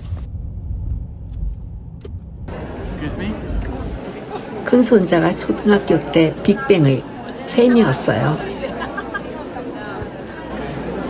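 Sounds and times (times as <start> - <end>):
car engine rumble: 0.0 - 4.2
road noise: 0.0 - 11.0.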